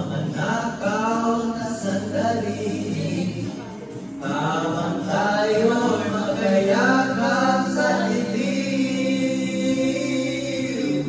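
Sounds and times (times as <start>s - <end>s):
backing music: 0.0s - 11.0s
men singing into microphones: 0.0s - 11.0s.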